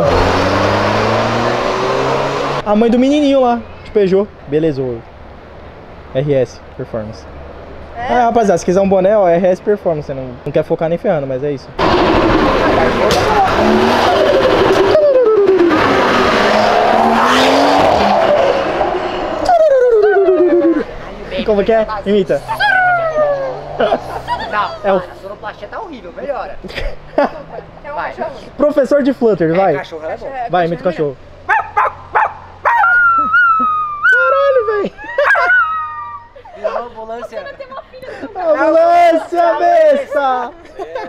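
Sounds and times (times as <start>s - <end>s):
car accelerating hard: 0.0s - 2.7s, 11.8s - 21.5s, 22.1s - 25.6s
woman whining like a dog: 19.4s - 20.8s, 22.5s - 23.7s, 32.7s - 36.4s.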